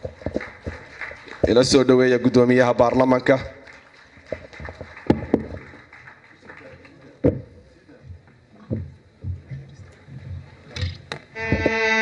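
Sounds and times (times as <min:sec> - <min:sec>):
footsteps on stage floor: 0:00.0 - 0:01.8, 0:07.2 - 0:11.8.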